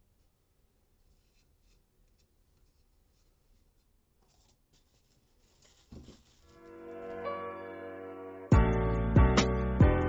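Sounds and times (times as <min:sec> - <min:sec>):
scratching of wooden board handled: 0:01.0 - 0:06.6.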